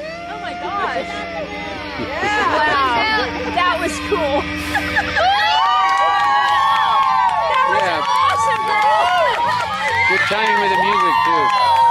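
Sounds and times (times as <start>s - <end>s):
group of voices yelling: 5.0s - 11.9s.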